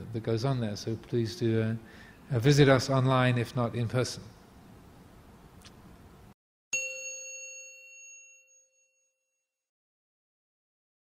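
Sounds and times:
bell-like chime: 6.7s - 9.6s.

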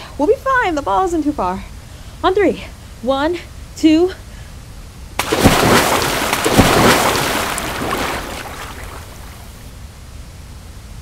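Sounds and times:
churning water: 5.2s - 9.7s
heavy splashes into water: 5.2s - 9.7s.

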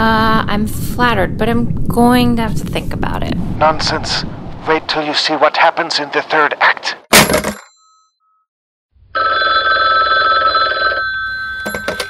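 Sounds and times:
telephone ringing: 9.1s - 12.0s.

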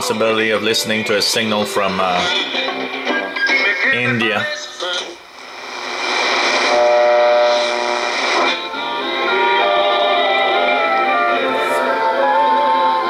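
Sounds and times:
radio static hiss: 3.6s - 11.9s
radio broadcast with held tones: 3.7s - 9.8s.

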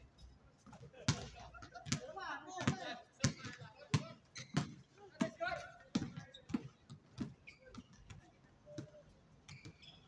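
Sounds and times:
basketball bouncing on court: 1.1s - 8.2s.

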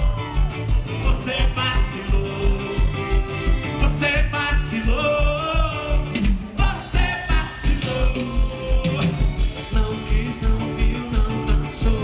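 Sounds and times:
electric guitar: 0.0s - 12.0s
man singing: 0.9s - 12.0s.

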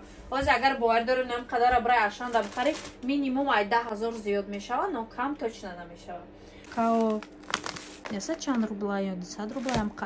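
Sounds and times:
plastic packaging crinkling: 2.2s - 3.1s, 6.6s - 8.7s, 9.5s - 10.0s.

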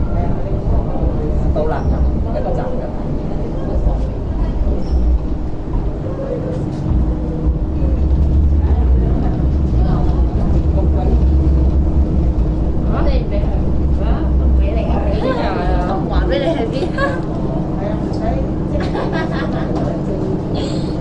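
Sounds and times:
steady hum: 0.0s - 21.0s
train wheels rumbling: 0.0s - 21.0s.

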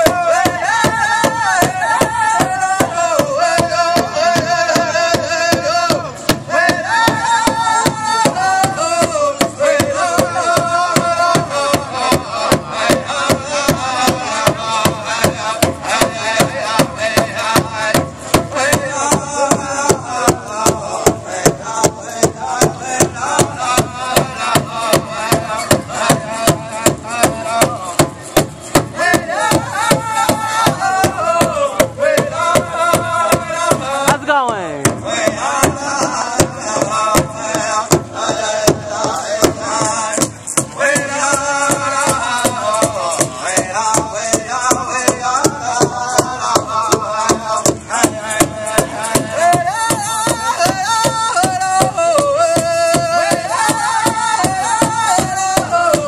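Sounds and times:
group singing high phrases: 0.0s - 28.2s, 28.9s - 56.0s
big drum steady beat: 0.0s - 56.0s.

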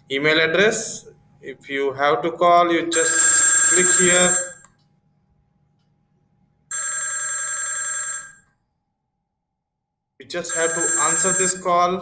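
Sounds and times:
phone ringtone: 3.0s - 4.6s, 6.7s - 8.4s, 10.4s - 11.7s.

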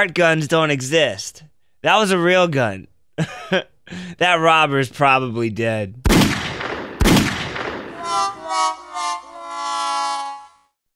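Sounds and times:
handgun shots with echo: 6.1s - 8.2s
horn-like tune: 7.9s - 10.8s.

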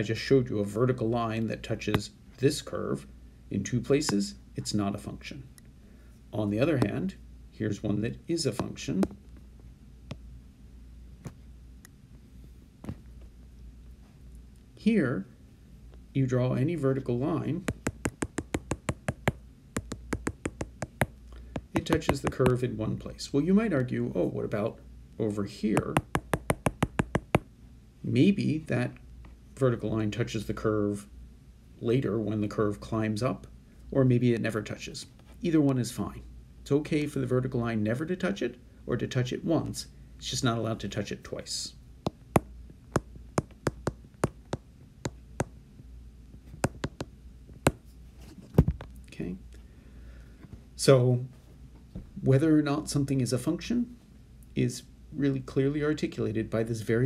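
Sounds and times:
stylus tapping on glass screen: 17.7s - 22.6s, 25.8s - 27.5s, 42.1s - 45.5s, 46.5s - 47.1s.

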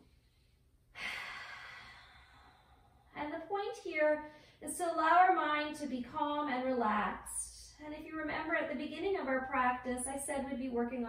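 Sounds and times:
woman sighing breathily: 1.0s - 2.9s.

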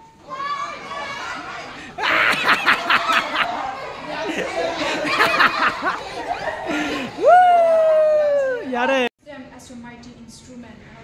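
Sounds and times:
children laughing: 0.4s - 8.8s.

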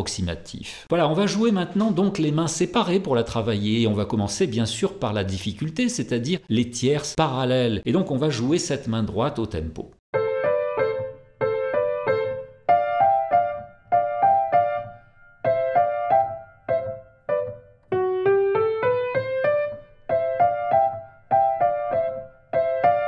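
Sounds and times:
piano playing thirds: 10.1s - 23.0s.

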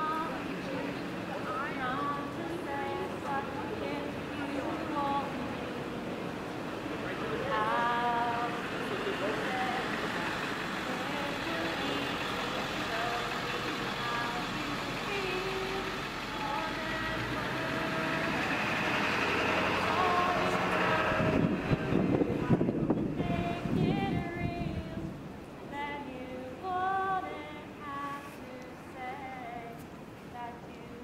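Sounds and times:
scattered voices: 0.0s - 24.5s
steady background noise: 0.0s - 31.0s.

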